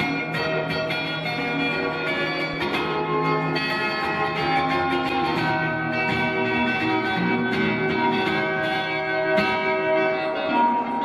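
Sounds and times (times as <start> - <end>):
acoustic guitar strumming chords: 0.0 - 11.0.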